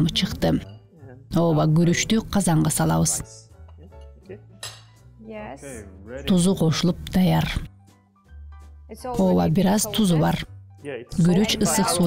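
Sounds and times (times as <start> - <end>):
quiet background music: 0.0 - 12.0
kitchenware clinking: 0.3 - 0.9, 3.7 - 5.0.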